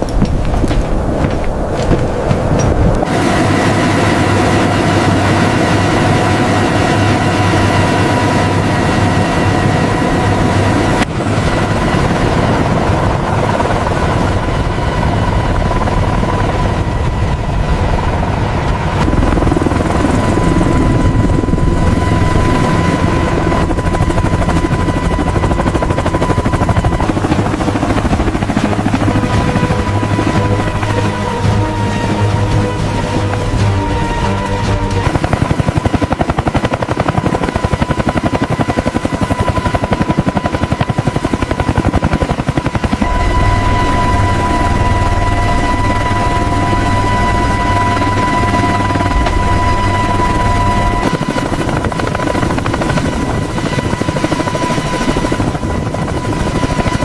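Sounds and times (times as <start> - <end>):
helicopter turbine and rotor noise: 0.0 - 57.0.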